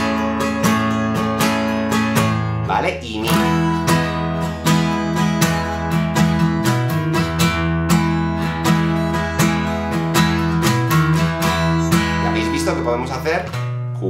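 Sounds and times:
acoustic guitar strummed: 0.0s - 14.0s.

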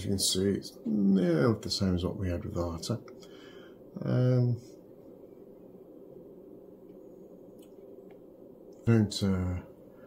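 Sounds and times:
low background hiss and hum: 0.0s - 10.0s.

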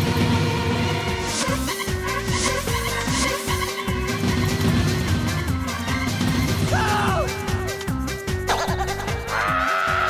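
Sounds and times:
background music with steady beat: 0.0s - 10.0s
woman screaming: 6.7s - 7.3s.

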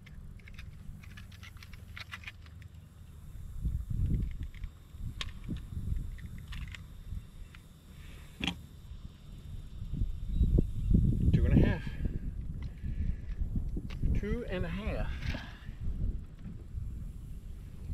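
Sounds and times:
handling clicks and knocks: 0.0s - 3.0s
steady low rumble: 0.0s - 17.9s.

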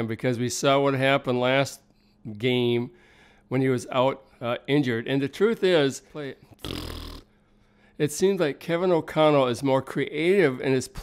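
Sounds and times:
man inhaling sharply: 2.9s - 3.5s, 7.3s - 8.0s.

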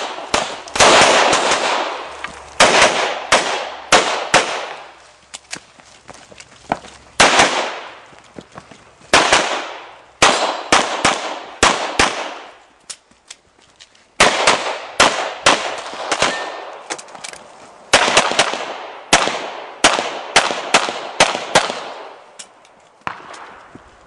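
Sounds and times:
pistol shots with echo: 0.0s - 4.9s, 7.2s - 8.0s, 9.1s - 12.6s, 14.2s - 16.8s, 17.9s - 22.2s, 23.0s - 23.6s.

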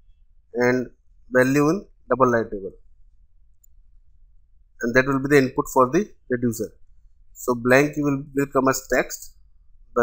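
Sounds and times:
faint low hum: 0.0s - 10.0s
computer mouse click: 3.5s - 3.8s.

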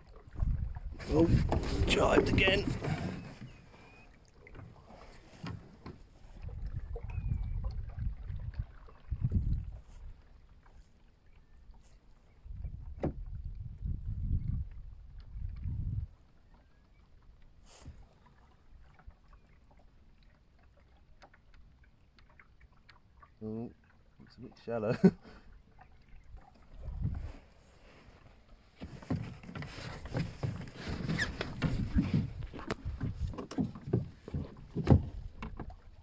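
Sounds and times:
water lapping against boat hull: 0.0s - 36.0s.

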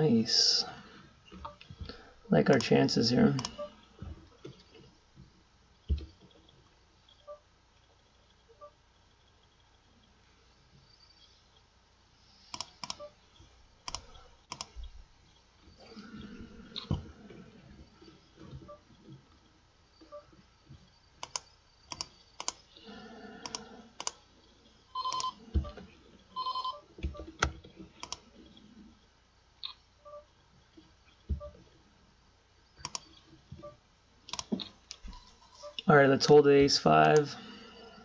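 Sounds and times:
computer mouse clicks: 12.4s - 13.0s, 13.8s - 14.8s, 21.2s - 22.7s, 23.4s - 24.2s, 27.3s - 28.2s, 32.8s - 33.2s, 34.3s - 35.0s
short electronic beeps: 29.6s - 30.3s.

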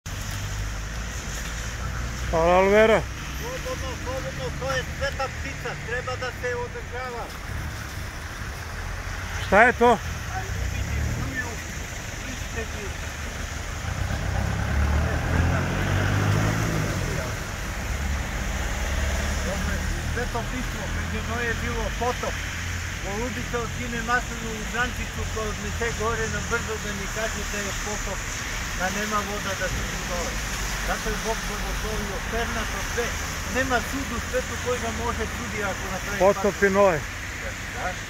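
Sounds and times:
traffic on wet road: 0.0s - 38.0s
truck engine passing: 0.2s - 38.0s.

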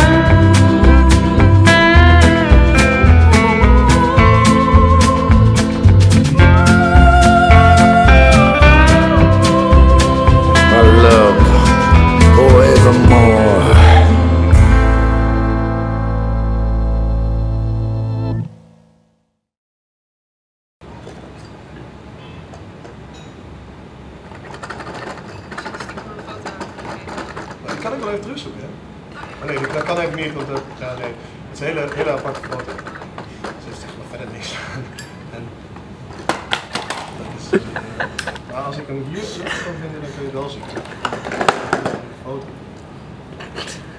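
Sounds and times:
person speaking: 10.6s - 14.1s
rapid rattling clatter: 24.3s - 28.2s, 29.2s - 31.0s, 31.6s - 33.8s.

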